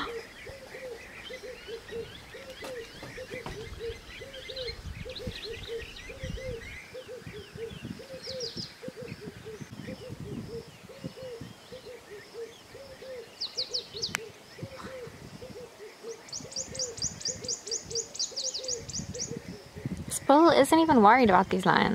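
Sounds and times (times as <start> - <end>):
birds chirping and twittering: 0.0 - 21.9.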